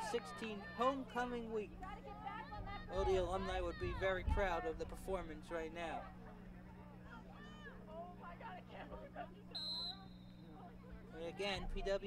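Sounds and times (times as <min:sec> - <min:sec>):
faint voices of players calling: 0:00.0 - 0:12.0
whistle blast: 0:09.5 - 0:10.6.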